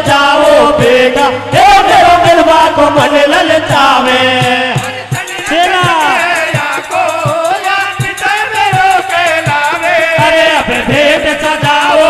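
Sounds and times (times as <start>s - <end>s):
drum beating steadily: 0.0s - 12.0s
men singing devotional song: 0.0s - 12.0s.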